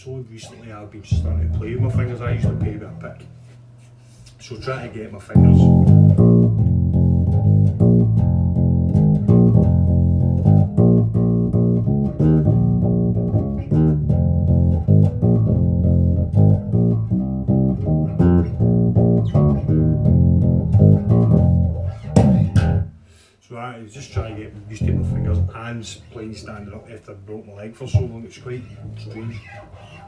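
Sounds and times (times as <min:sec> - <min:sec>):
electric bass fingerstyle notes: 0:00.4 - 0:03.8, 0:05.3 - 0:23.0, 0:24.2 - 0:26.6, 0:27.9 - 0:30.0
scratchy string noise: 0:00.5 - 0:04.1, 0:05.4 - 0:22.8, 0:24.8 - 0:26.6, 0:28.3 - 0:30.0.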